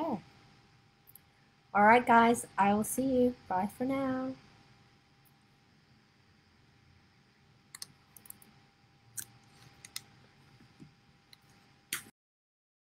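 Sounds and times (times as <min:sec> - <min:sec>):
faint steady hum: 0:00.0 - 0:12.1.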